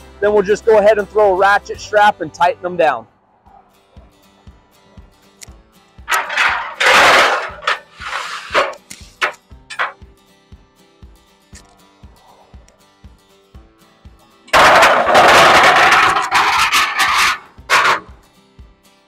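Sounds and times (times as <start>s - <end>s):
background music with steady beat: 0.0s - 15.1s, 17.4s - 19.0s
metal ramp scraping on mesh: 6.1s - 10.0s, 14.6s - 18.2s.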